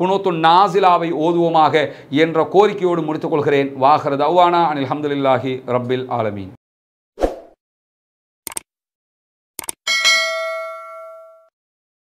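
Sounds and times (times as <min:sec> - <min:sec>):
quick double clicks: 0:08.5 - 0:08.7, 0:09.6 - 0:09.8
bell ding: 0:09.9 - 0:11.6.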